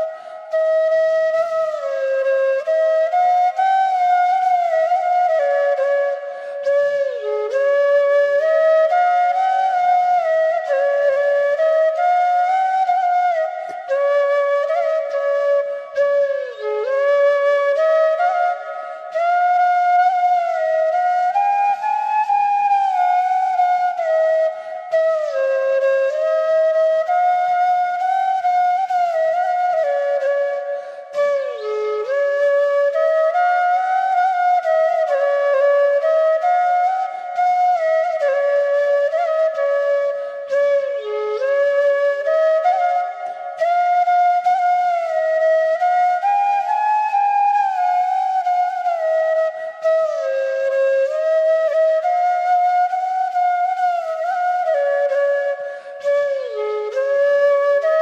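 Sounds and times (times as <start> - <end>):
solo flute melody: 0.0 - 58.0.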